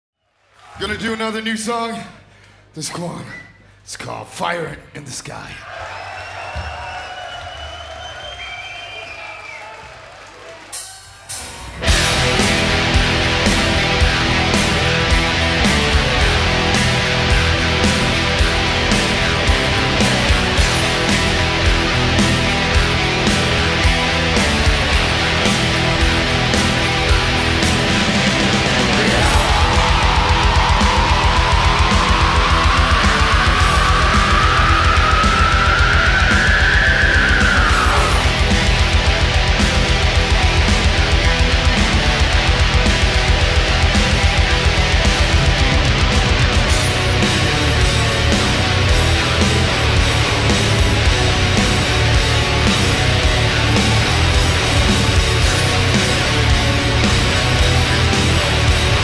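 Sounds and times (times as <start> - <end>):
metal band playing loud: 10.7 - 59.0
distorted electric guitars: 11.5 - 59.0
rapid low drum beats: 11.8 - 59.0
sustained held tones: 29.4 - 38.4.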